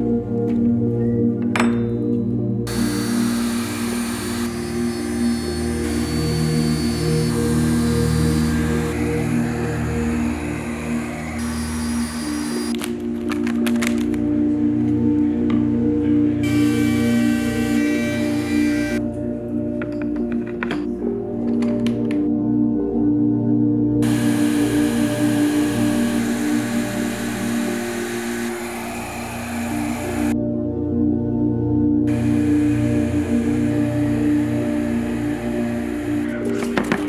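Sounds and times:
ambient instrumental music: 0:00.0 - 0:37.0
shop machinery hiss: 0:02.7 - 0:12.7, 0:16.4 - 0:19.0, 0:24.0 - 0:30.4, 0:32.1 - 0:37.0.

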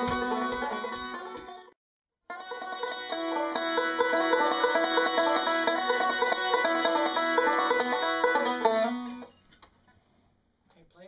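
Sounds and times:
resonator banjo picking: 0:00.0 - 0:01.7, 0:02.3 - 0:09.4.

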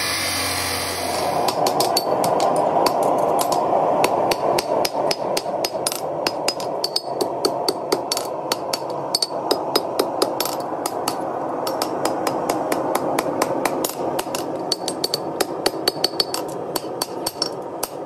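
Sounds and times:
chop saw cutting steel: 0:00.0 - 0:01.6.

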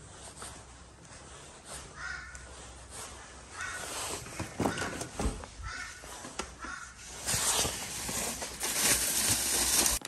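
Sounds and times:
crow cawing: 0:02.0 - 0:02.4, 0:03.5 - 0:07.0.

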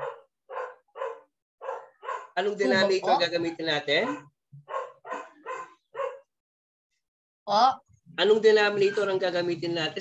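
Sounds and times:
dog barking: 0:00.0 - 0:02.4, 0:04.0 - 0:06.4.

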